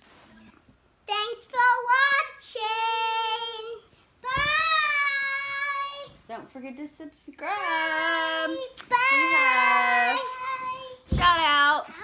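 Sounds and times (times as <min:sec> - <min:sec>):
child singing a farewell: 0:01.3 - 0:06.2, 0:07.6 - 0:11.2.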